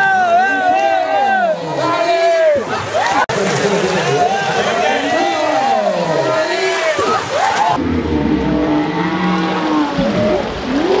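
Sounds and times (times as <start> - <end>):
slowed-down human shout: 0.0 - 7.8.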